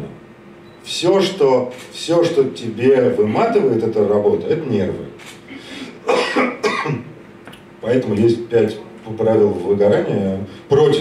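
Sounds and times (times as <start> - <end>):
person coughing: 6.0 - 7.1.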